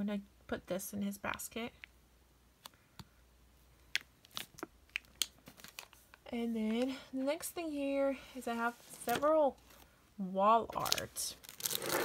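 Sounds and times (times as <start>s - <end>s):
plastic packaging crinkling: 3.9s - 6.2s, 10.7s - 12.0s.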